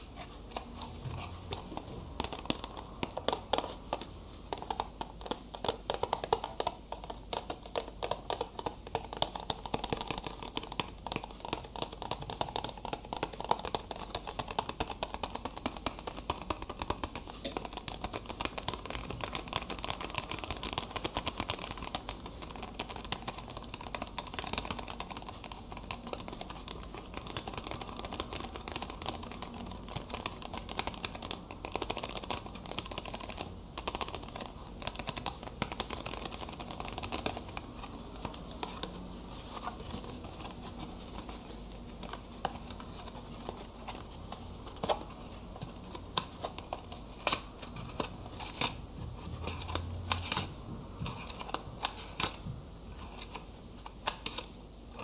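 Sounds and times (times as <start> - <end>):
fingers tapping hard object: 0.5 - 48.8.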